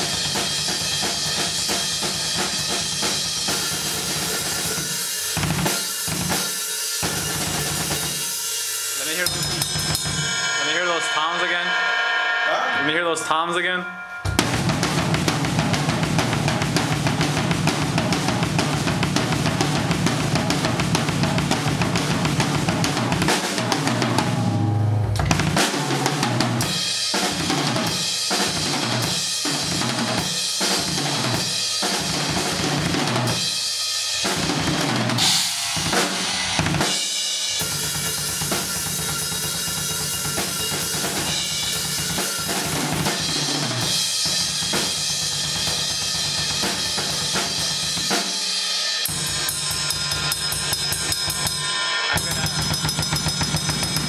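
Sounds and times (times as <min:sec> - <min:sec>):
drum kit played with sticks: 0:00.0 - 0:54.0.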